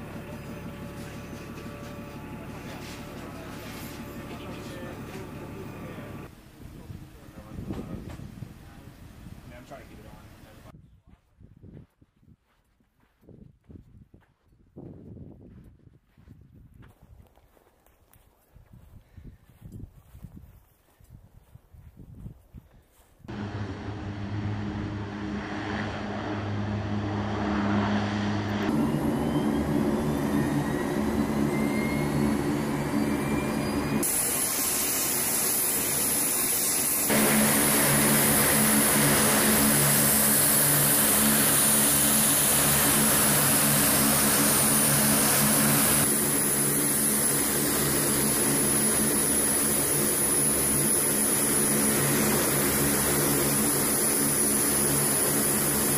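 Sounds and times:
high engine whine: 0.0s - 6.3s, 23.3s - 55.9s
propeller drone: 0.0s - 6.4s, 23.3s - 55.9s.

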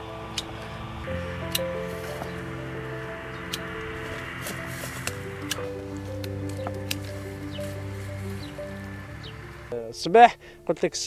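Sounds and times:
background music with held notes: 0.0s - 11.0s
pruning shears snipping twig: 3.5s - 8.4s.

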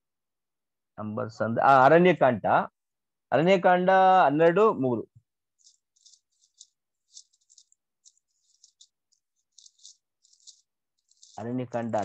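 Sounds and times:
faint short rustles and clicks: 5.6s - 12.0s.

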